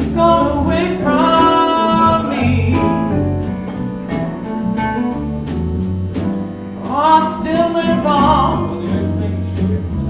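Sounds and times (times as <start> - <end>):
woman singing blues: 0.0 - 3.6, 6.8 - 9.4
band with electric bass: 0.0 - 10.0.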